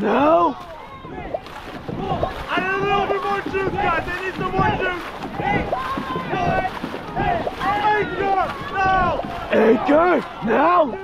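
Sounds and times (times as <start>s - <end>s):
paddles splashing in water: 0.0s - 11.0s
wind on microphone: 0.4s - 11.0s.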